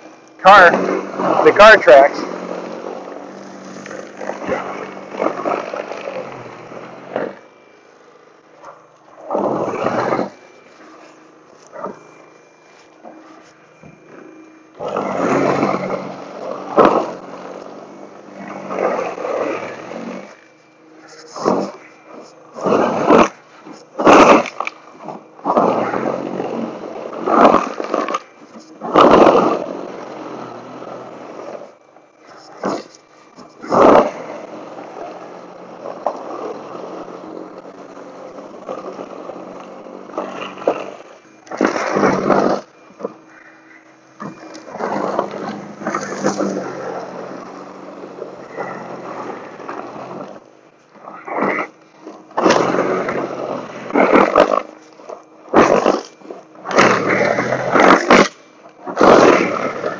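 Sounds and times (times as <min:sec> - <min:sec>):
snow blower motor humming: 0:00.0 - 0:59.9
auger throwing packed snow: 0:32.6 - 0:43.2, 0:44.2 - 0:50.4, 0:51.2 - 0:54.9, 0:55.5 - 0:59.9.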